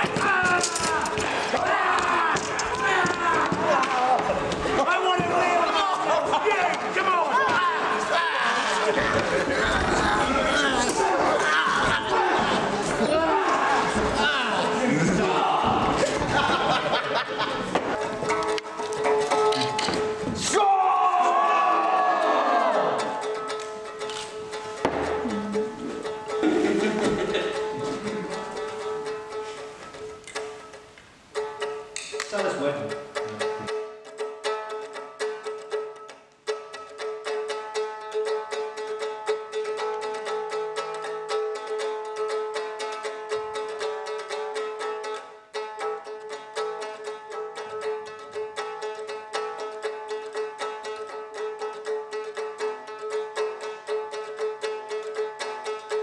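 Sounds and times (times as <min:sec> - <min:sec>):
people shouting and cheering: 0:00.0 - 0:24.2.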